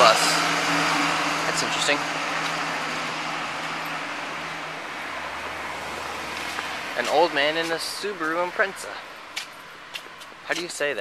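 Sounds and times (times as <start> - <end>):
bus engine hum: 0.0 - 9.1
street traffic noise: 0.0 - 11.0.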